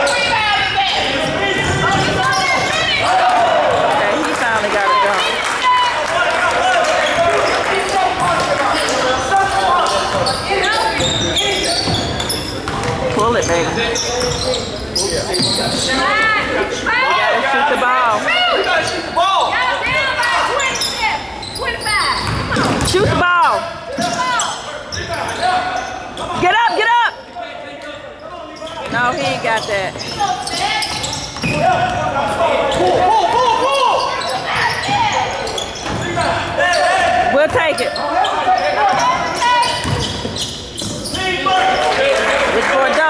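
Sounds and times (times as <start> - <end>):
sneakers squeaking: 0.0 - 5.9, 6.9 - 42.0.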